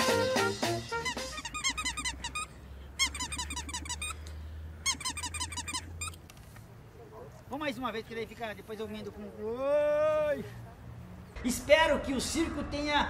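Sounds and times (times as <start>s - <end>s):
jazzy brass music: 0.0s - 1.6s
rapid high-pitched squeaks: 0.9s - 4.2s, 4.8s - 6.2s.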